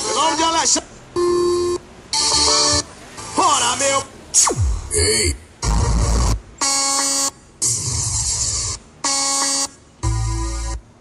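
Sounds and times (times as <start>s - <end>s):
buzzy held tones: 0.0s - 11.0s
deep bass hits: 4.5s - 6.6s.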